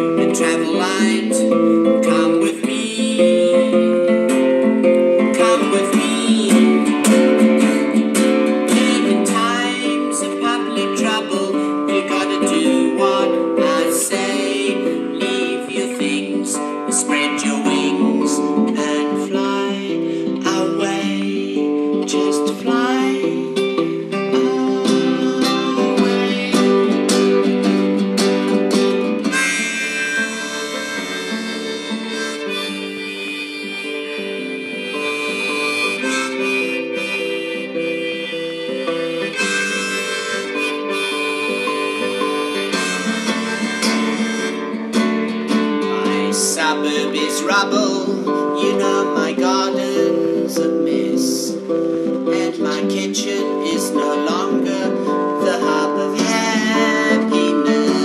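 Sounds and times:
harmonica: 0:00.0 - 0:58.0
nylon-string guitar: 0:00.0 - 0:58.0.

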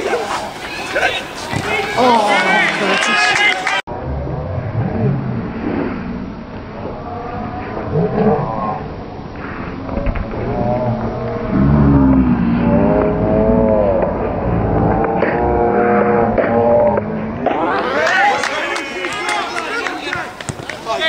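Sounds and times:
men shouting: 0:01.8 - 0:03.8, 0:17.5 - 0:20.0.

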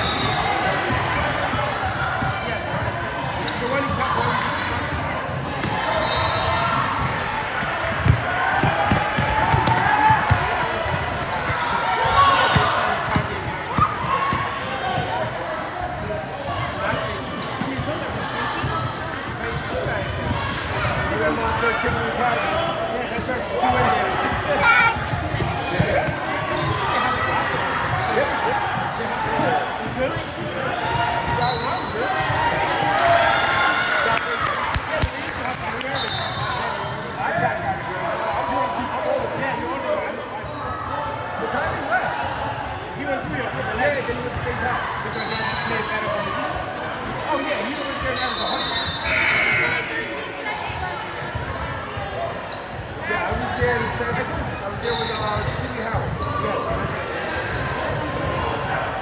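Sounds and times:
voices in echoing hall: 0:00.0 - 0:59.0.

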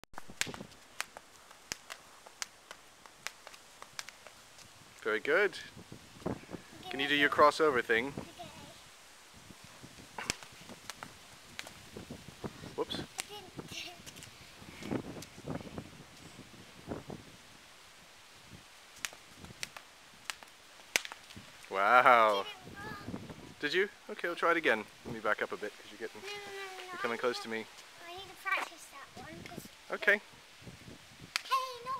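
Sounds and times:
sandals landing on pavement: 0:00.2 - 0:04.7, 0:10.2 - 0:11.8, 0:19.0 - 0:22.5
skipping rope slapping pavement: 0:00.2 - 0:04.7, 0:10.2 - 0:11.8, 0:19.0 - 0:21.3.

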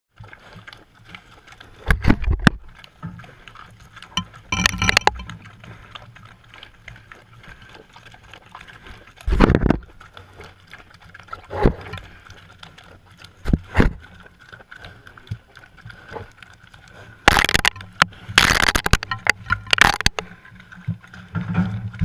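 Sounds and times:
pigs snuffling: 0:00.1 - 0:22.0.

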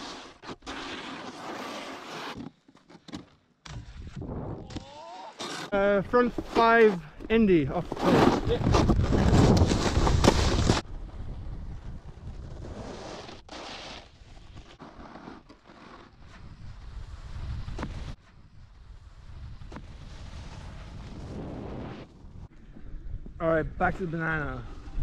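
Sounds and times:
snowboard sliding over snow: 0:00.0 - 0:02.4, 0:05.8 - 0:22.4.

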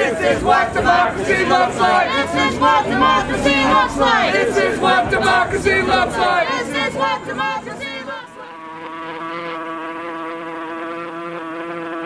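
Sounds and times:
person chanting: 0:00.0 - 0:12.0
steady buzzing tone: 0:08.1 - 0:12.0.

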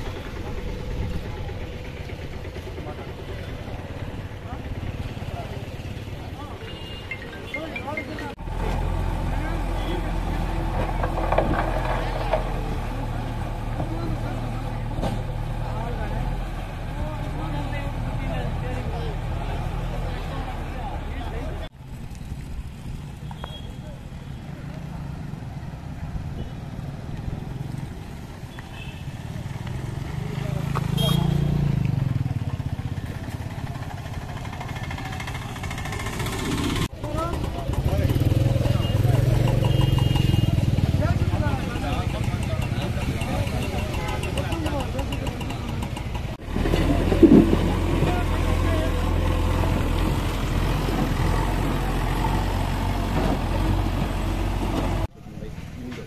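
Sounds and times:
diesel engine humming: 0:00.0 - 0:23.2, 0:23.9 - 0:55.1
motorcycle driving past: 0:27.4 - 0:44.2.

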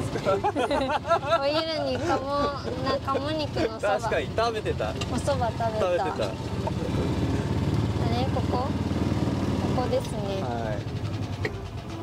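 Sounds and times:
golf cart engine drone: 0:00.0 - 0:12.0.

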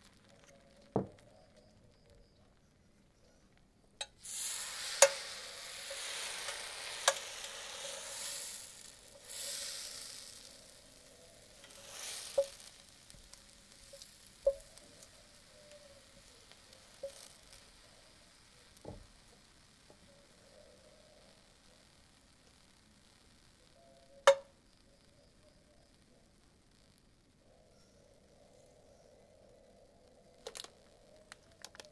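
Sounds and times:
crepe sizzling: 0:00.0 - 0:25.0.

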